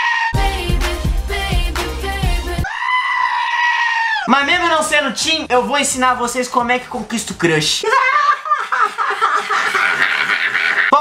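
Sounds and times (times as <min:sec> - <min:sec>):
goat screaming: 0:00.0 - 0:00.4, 0:02.6 - 0:04.5
pop music with heavy beat: 0:00.4 - 0:02.7.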